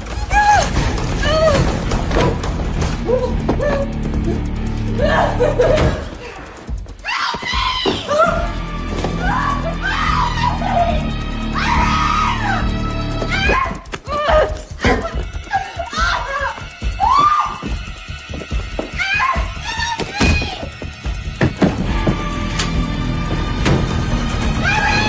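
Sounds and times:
tense music: 0:00.0 - 0:25.0
woman screaming in terror: 0:07.0 - 0:08.6, 0:09.2 - 0:17.7, 0:24.6 - 0:25.0
low droning horror score: 0:08.2 - 0:13.8.

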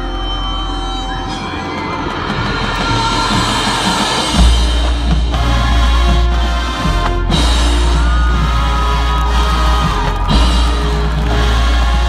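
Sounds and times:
marching band playing: 0:00.0 - 0:12.0.

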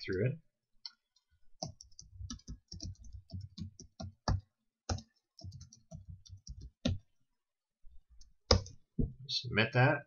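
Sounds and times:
computer keyboard typing: 0:00.8 - 0:07.1.

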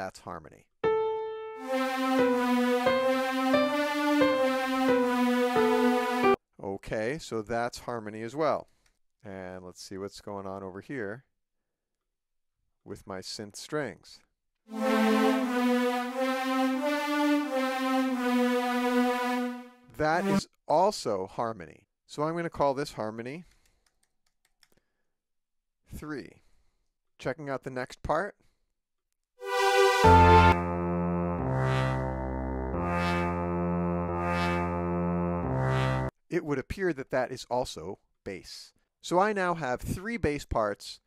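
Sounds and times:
synth strings long held note: 0:00.8 - 0:06.4, 0:14.7 - 0:20.4, 0:29.4 - 0:36.1.

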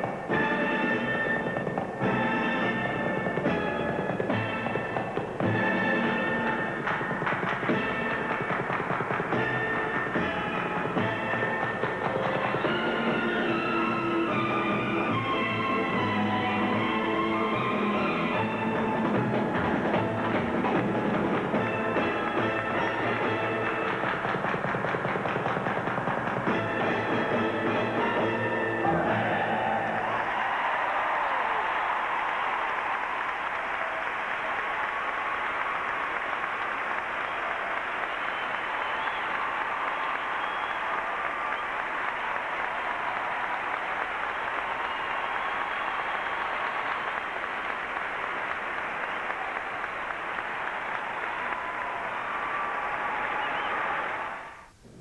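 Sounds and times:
flamenco music with percussion: 0:00.0 - 0:30.2
crowd applauding: 0:00.0 - 0:54.8.

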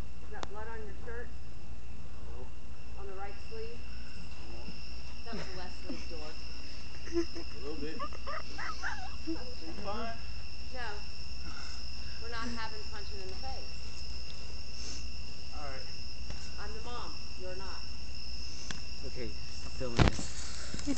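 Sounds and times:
crickets chirring: 0:00.0 - 0:20.9.

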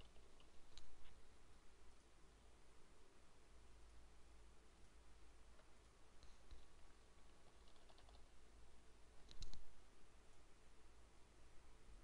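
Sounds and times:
faint computer clicks: 0:00.0 - 0:01.2, 0:05.5 - 0:08.3, 0:09.2 - 0:09.7.

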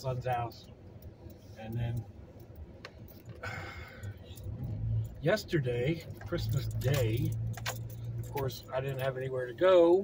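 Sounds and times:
vehicle engine and road rumble: 0:00.0 - 0:10.0.

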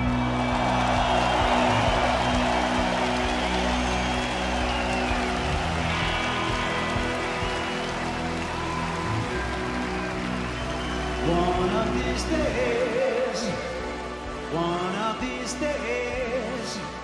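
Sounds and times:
synth-pop band playing: 0:00.0 - 0:17.0.

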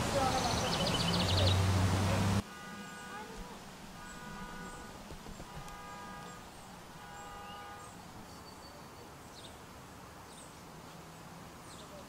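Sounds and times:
held pitched call: 0:02.6 - 0:08.0
faint bird chirps: 0:02.8 - 0:09.6.

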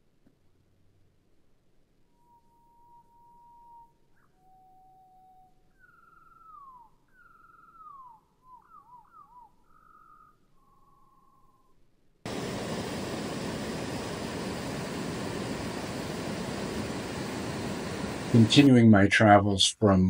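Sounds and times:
bird whistling and trilling: 0:02.3 - 0:11.7.

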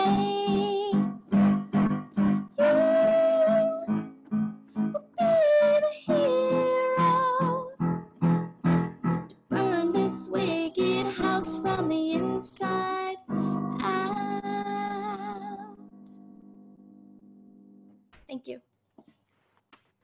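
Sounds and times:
woman singing: 0:00.0 - 0:01.2, 0:02.2 - 0:04.0, 0:05.0 - 0:07.8, 0:09.5 - 0:15.8
electric keyboard chords: 0:00.0 - 0:05.3, 0:06.1 - 0:18.0.

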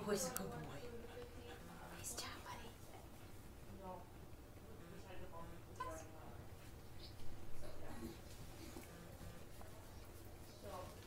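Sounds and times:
breathy whispering voice: 0:00.8 - 0:03.0.

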